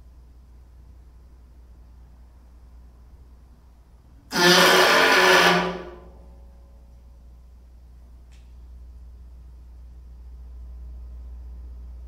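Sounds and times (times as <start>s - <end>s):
low background hum: 0.0s - 12.0s.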